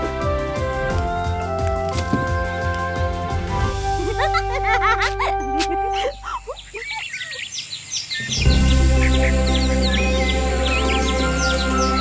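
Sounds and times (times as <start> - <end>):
birds chirping: 0.2 - 12.0
music chords with deep bass: 8.4 - 12.0.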